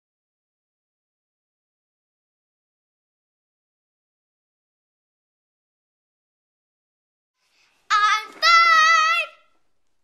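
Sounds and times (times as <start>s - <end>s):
girl singing high note: 7.9s - 9.5s.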